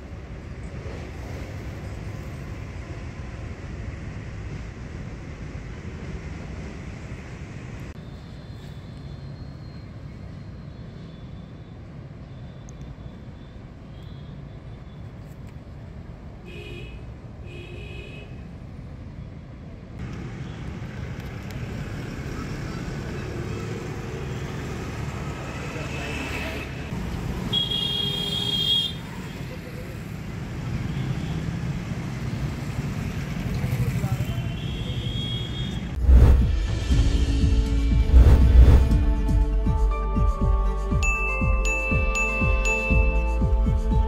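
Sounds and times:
steady low road rumble: 12.0 - 25.8, 31.6 - 44.0.

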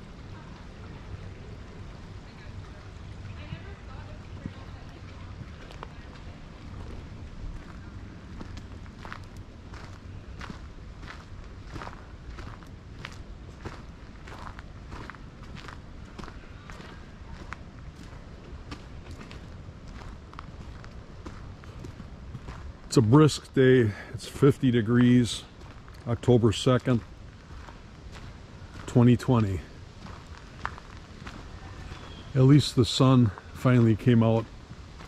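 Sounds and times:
low steady rumble: 0.0 - 35.0
footsteps on leafy dirt trail: 3.6 - 35.0.

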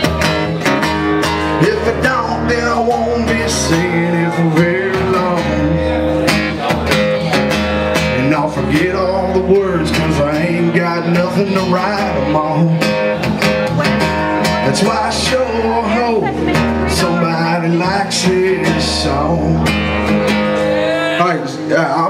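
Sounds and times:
live rock country band: 0.0 - 22.0.

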